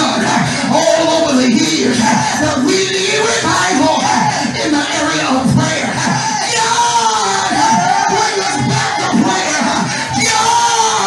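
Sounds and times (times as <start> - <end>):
congregation calling out: 0.0 - 11.0
preacher shouting into a microphone: 0.0 - 11.0.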